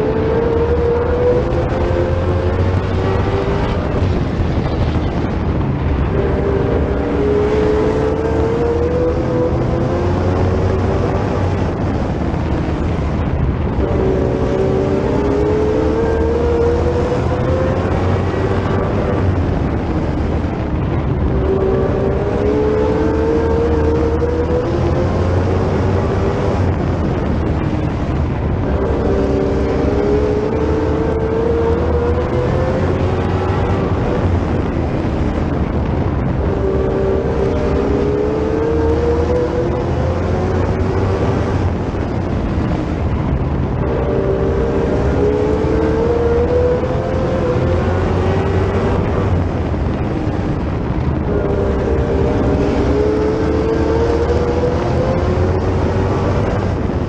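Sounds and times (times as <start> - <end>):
race car engine revving: 0.0 - 57.0.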